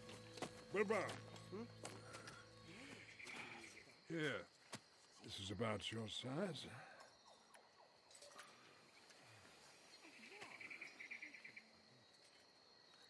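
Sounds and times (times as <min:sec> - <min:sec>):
faint insect trill: 0:00.0 - 0:13.0.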